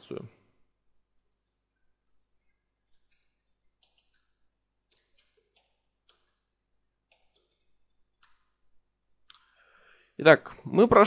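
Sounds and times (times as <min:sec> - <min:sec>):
keyboard keystroke clicks: 0:02.9 - 0:04.3.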